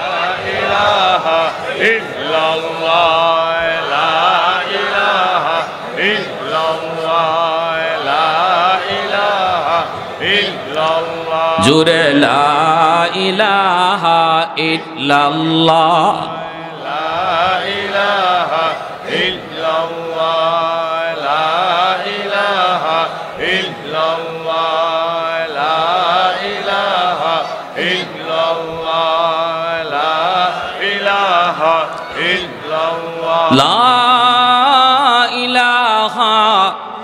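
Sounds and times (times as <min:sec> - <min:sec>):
person chanting into a microphone: 0:00.0 - 0:37.0.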